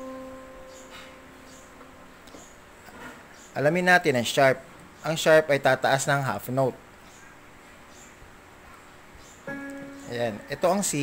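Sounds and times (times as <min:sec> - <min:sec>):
electronic keyboard note: 0:00.0 - 0:02.2, 0:09.5 - 0:11.0.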